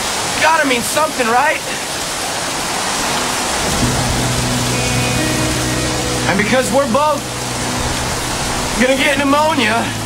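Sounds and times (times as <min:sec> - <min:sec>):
heavy rain: 0:00.0 - 0:10.0
soft background music: 0:03.1 - 0:10.0.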